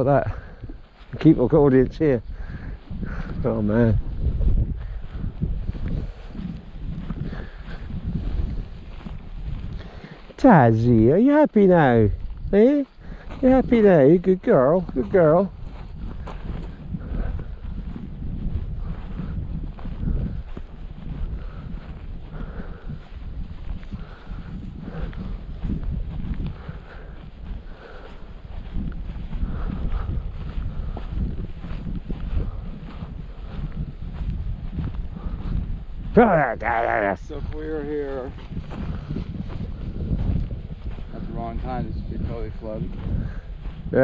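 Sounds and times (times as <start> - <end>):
footsteps on grass: 0.0 - 44.0
wind buffeting microphone: 0.0 - 44.0.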